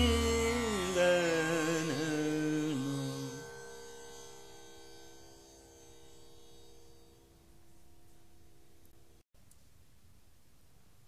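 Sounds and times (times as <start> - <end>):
tanpura strings droning: 0.0 - 9.2.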